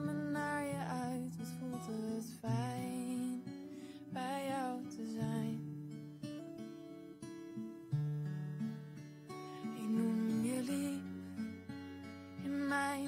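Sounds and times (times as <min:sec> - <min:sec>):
woman singing: 0:00.0 - 0:05.7, 0:09.6 - 0:11.4, 0:12.4 - 0:13.0
acoustic guitar strumming: 0:00.0 - 0:13.0.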